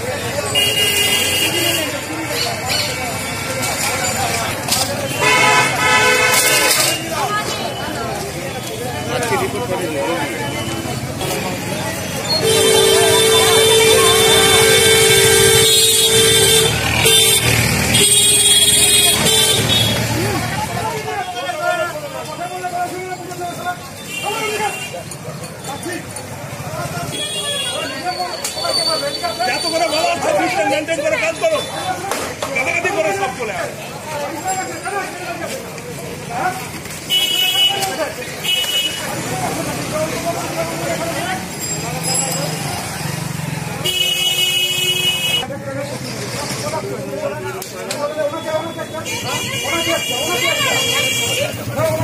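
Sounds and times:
street noise: 0.0s - 52.0s
traffic: 0.0s - 52.0s
vehicle horn honking: 5.1s - 7.1s, 12.3s - 20.0s, 43.8s - 45.4s.

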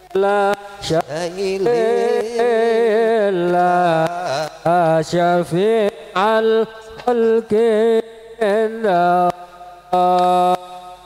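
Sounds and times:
men chanting: 0.0s - 7.8s
person singing through megaphone: 0.0s - 9.3s.

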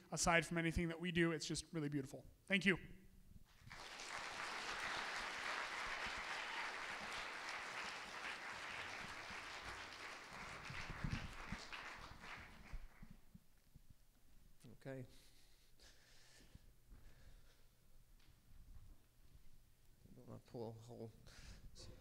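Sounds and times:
audience applauding: 3.5s - 13.2s.

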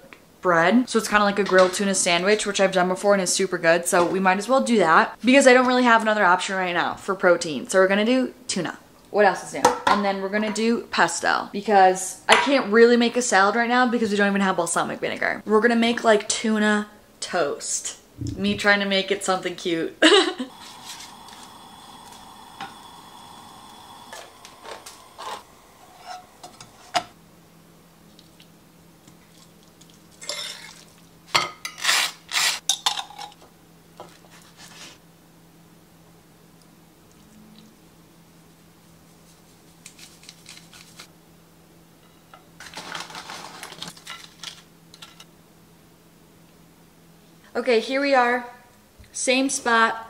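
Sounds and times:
low steady hum: 16.2s - 31.4s
knife spreading on toast: 39.2s - 41.1s.

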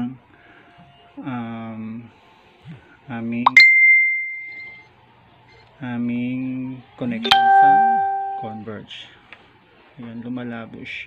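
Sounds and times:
high clear ding: 3.5s - 4.8s, 7.2s - 8.7s
person's voice: 7.2s - 8.7s.

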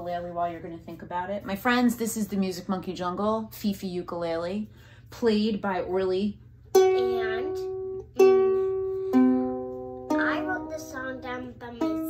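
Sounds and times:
ukulele strumming chords: 6.7s - 12.0s.

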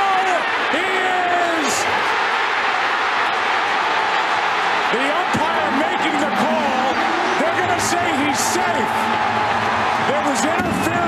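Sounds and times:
stadium crowd cheering: 0.0s - 11.0s
commentator speaking: 4.9s - 9.0s, 10.1s - 11.0s.

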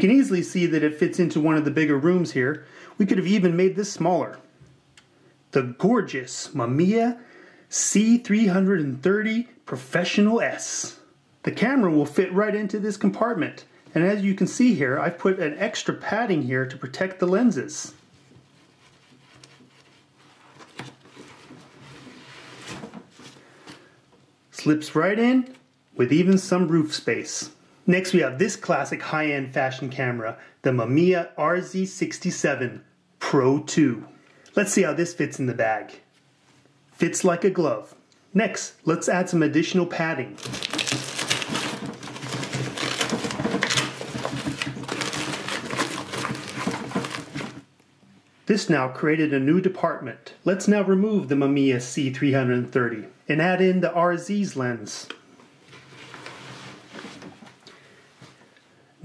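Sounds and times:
camera rustling in fabric bag: 40.4s - 47.7s.

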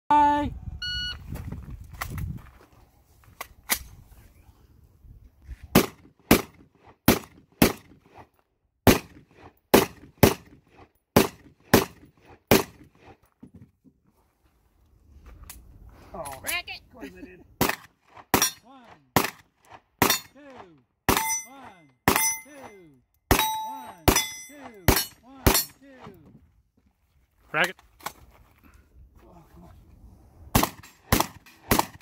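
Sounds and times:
shot timer electronic beep: 0.8s - 1.2s
gunshots in quick pairs: 5.7s - 8.2s, 8.8s - 10.6s, 11.2s - 12.9s, 17.6s - 19.4s, 30.5s - 32.0s.

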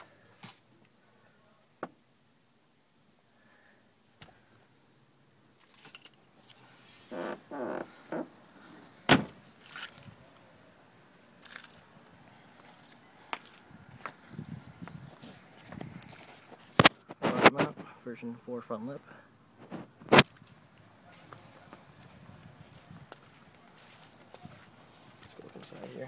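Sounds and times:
car boot lid slamming: 9.0s - 9.4s
footsteps: 12.5s - 17.9s, 19.6s - 26.0s.

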